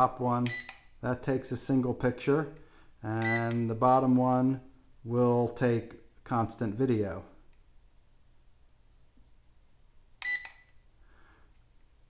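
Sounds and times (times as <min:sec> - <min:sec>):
high electronic beep: 0:03.2 - 0:03.6.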